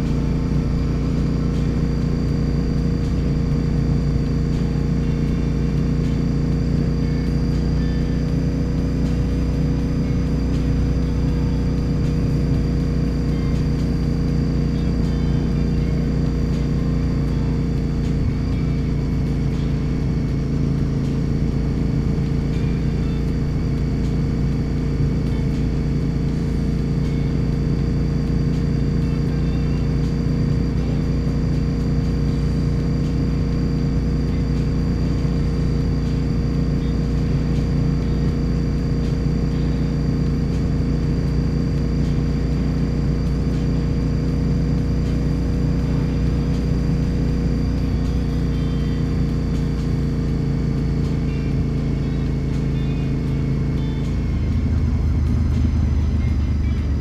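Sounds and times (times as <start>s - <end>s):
motorcycle engine running steadily: 0.0s - 57.0s.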